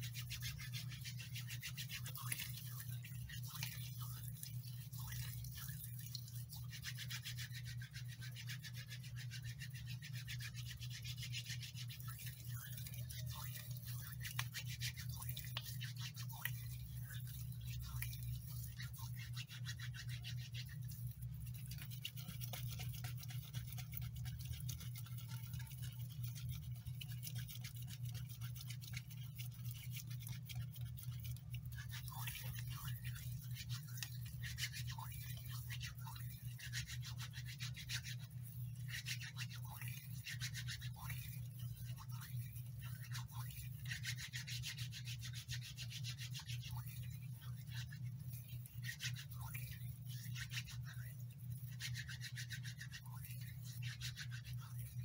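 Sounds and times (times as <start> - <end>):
hands rubbing foamy lather: 0.0 - 55.0.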